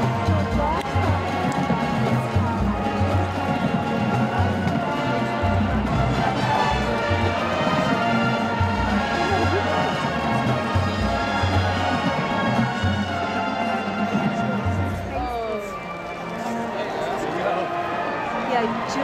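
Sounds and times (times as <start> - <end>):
bass drums beating: 0.0 - 13.1
brass holding sustained chords: 0.0 - 19.0.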